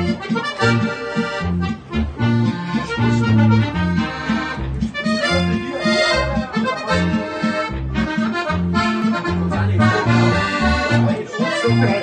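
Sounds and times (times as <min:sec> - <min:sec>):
button accordion playing folk tune: 0:00.0 - 0:12.0.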